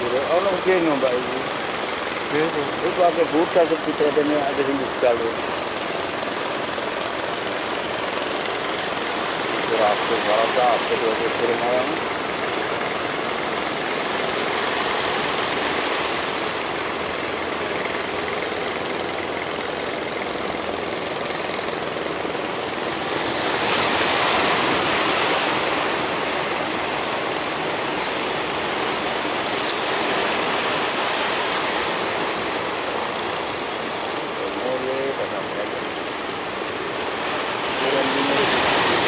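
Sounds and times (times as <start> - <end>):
sea surf and breaking waves: 0.0 - 39.0.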